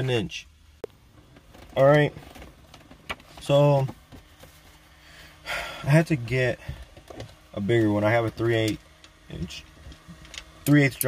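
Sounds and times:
man speaking: 0:00.0 - 0:00.5, 0:03.4 - 0:04.0, 0:05.8 - 0:06.6, 0:07.6 - 0:09.7, 0:10.7 - 0:11.0
faint steady hum: 0:00.0 - 0:11.0
man drawing breath: 0:04.9 - 0:05.9.

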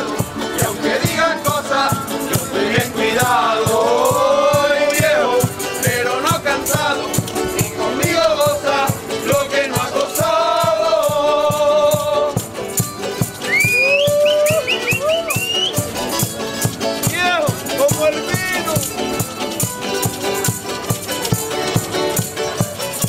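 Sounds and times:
shaken rattle beat: 0:00.0 - 0:23.0
strummed guitars: 0:00.0 - 0:23.0.

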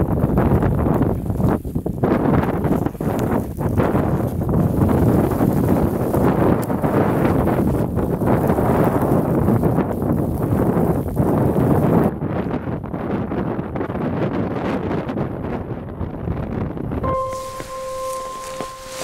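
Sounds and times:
strong gusty wind on microphone: 0:00.0 - 0:19.0.

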